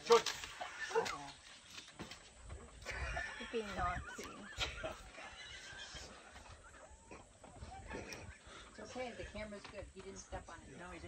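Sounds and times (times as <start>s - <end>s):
woman laughing: 2.8s - 8.6s.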